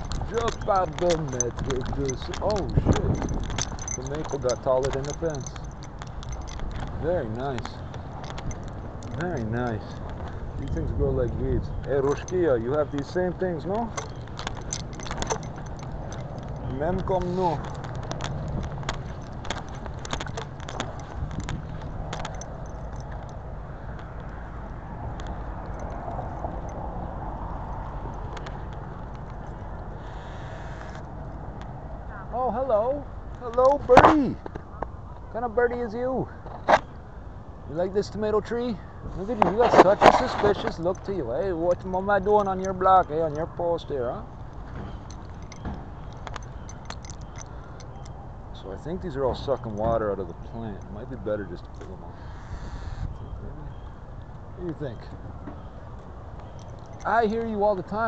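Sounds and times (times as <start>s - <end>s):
microphone handling noise: 0.0s - 12.5s, 39.1s - 40.8s
wind rumble: 0.0s - 35.4s.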